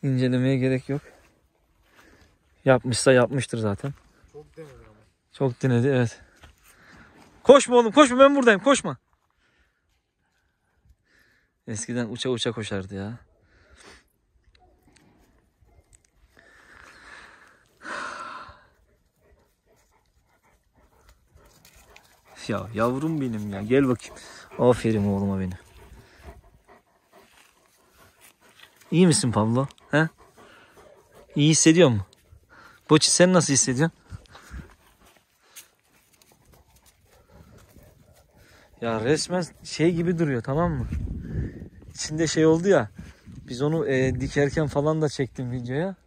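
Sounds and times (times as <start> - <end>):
dog huffing: 17.8 - 31.6.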